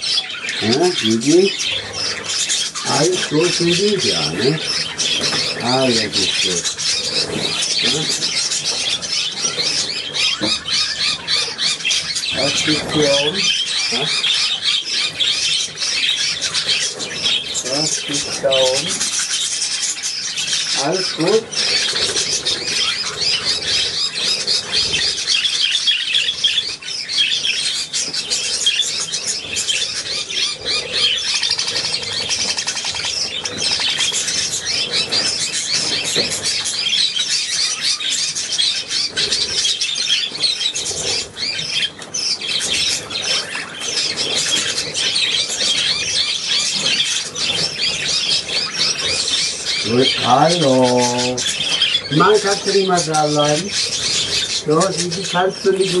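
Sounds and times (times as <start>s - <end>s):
budgerigars chattering: 0.0s - 56.0s.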